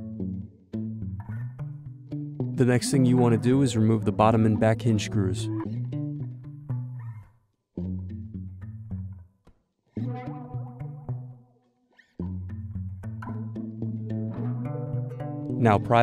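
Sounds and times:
background music: 0.0 - 7.1, 12.2 - 16.0.

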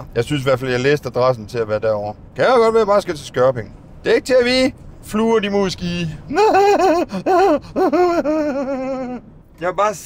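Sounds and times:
man vocalising high-pitched: 6.0 - 9.3.

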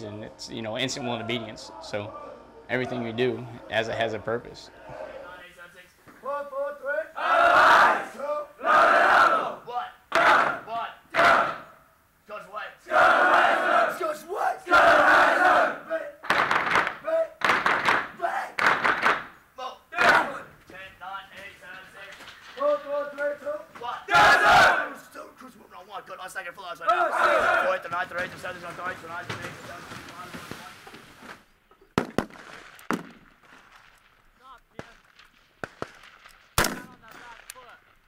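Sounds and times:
group yelling replies: 0.8 - 5.4, 6.4 - 11.7, 12.8 - 16.2, 18.2 - 18.6, 19.9 - 20.6, 23.3 - 25.3, 26.8 - 27.9
instructor shouting commands: 13.6 - 16.2, 17.0 - 17.4, 18.2 - 18.6, 19.6 - 21.6, 22.6 - 25.4
rifle shots: 34.8 - 37.8.

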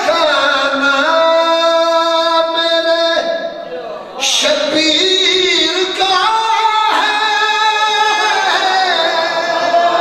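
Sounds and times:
man singing long high notes: 4.2 - 10.0.

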